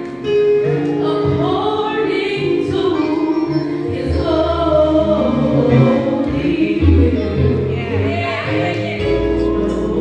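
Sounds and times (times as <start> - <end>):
instrumental accompaniment with deep bass: 0.0 - 10.0
woman singing gospel song: 1.0 - 10.0.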